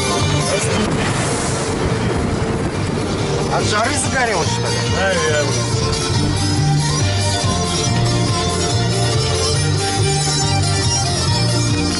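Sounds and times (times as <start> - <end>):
car driving on rough road: 0.0 - 11.9
lorry passing: 0.0 - 11.9.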